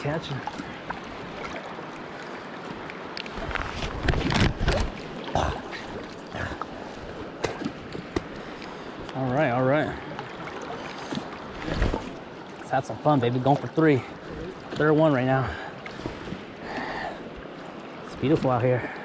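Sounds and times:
water splashing against microphone: 0.0s - 17.0s
river current rushing: 0.0s - 19.0s.

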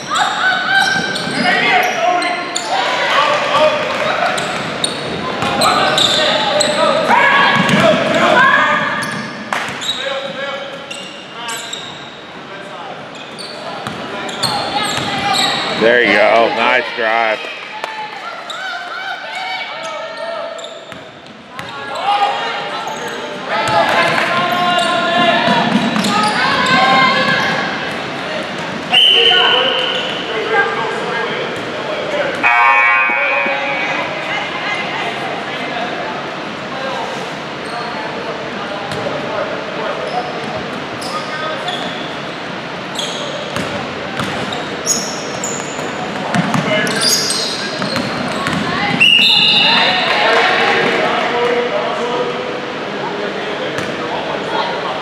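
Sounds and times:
players calling out: 13.4s - 17.5s.

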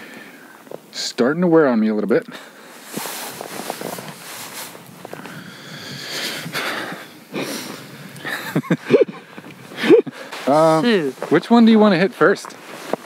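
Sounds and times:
man laughing breathily: 6.5s - 10.3s.

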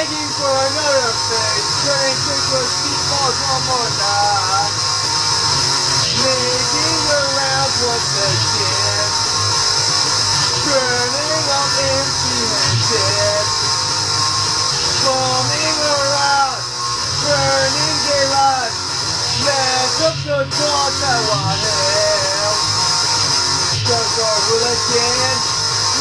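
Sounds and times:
man singing: 0.0s - 4.8s, 6.0s - 9.2s, 10.5s - 13.6s, 15.0s - 22.7s, 23.8s - 26.0s
guitar chords: 0.0s - 26.0s.

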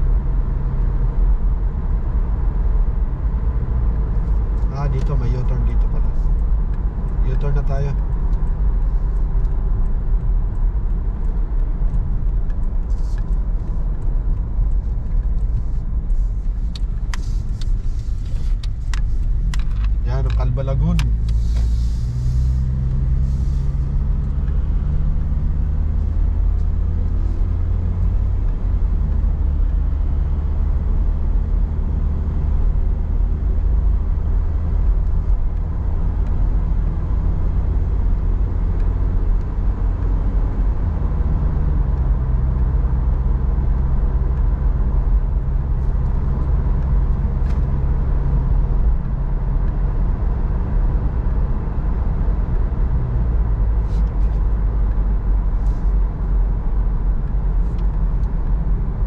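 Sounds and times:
car driving heard from inside: 0.0s - 59.0s.

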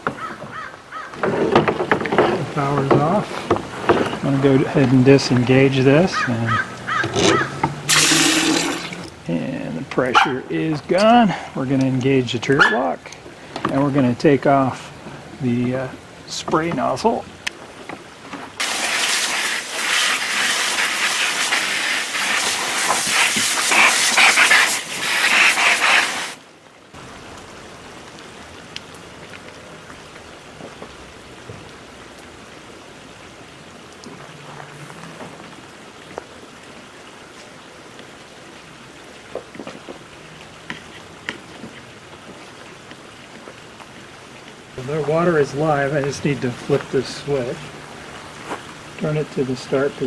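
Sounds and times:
paint sprayer hissing: 7.9s - 9.0s, 18.6s - 26.4s.

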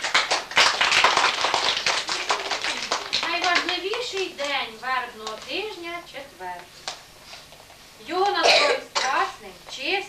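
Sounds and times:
audience applause: 0.0s - 4.0s.

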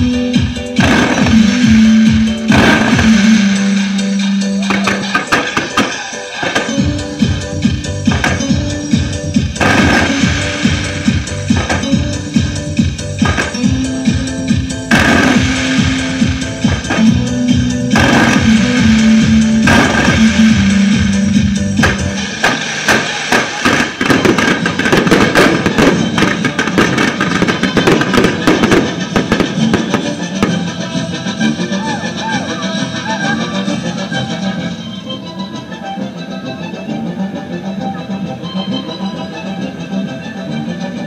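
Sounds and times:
loud music with stepping bass: 0.0s - 41.0s
fireworks crackling and popping: 0.8s - 7.4s, 8.0s - 13.9s, 14.6s - 31.4s.

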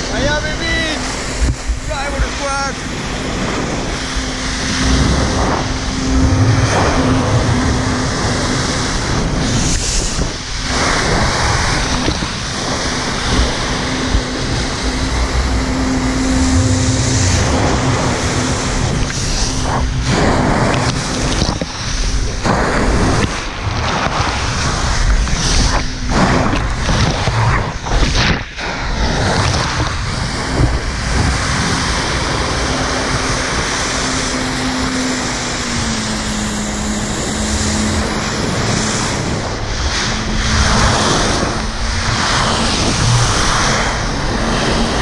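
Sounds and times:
water jets rushing: 0.0s - 27.9s
jet-ski engine hum: 0.0s - 45.0s
wind buffeting microphone: 0.0s - 45.0s.

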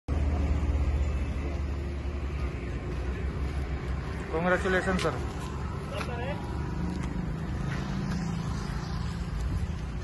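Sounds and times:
road traffic noise: 0.1s - 10.0s
vehicle engine rumble: 0.1s - 10.0s.

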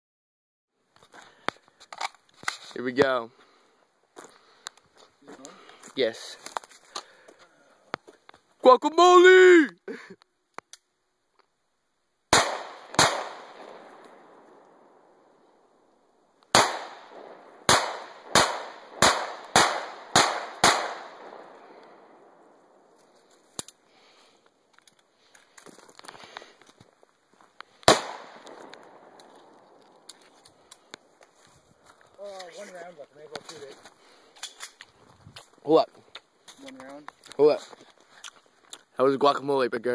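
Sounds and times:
pistol shots with echo: 12.3s - 14.8s, 16.5s - 22.4s, 27.9s - 29.2s.

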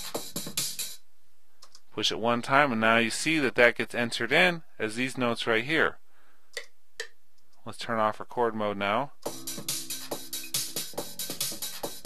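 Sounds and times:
drum machine beat: 0.0s - 1.0s, 9.2s - 12.0s
faint clicks: 1.6s - 1.9s.

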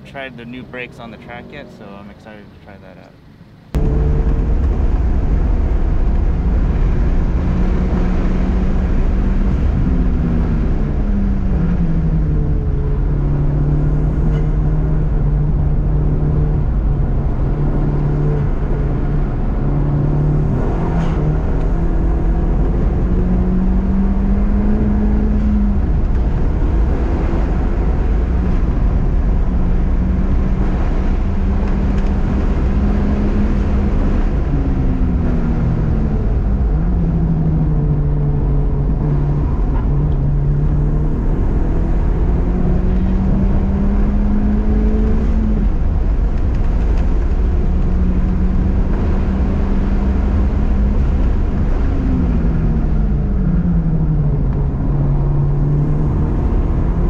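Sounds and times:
car engine revving: 0.0s - 57.0s
road and tyre rumble: 0.0s - 57.0s.

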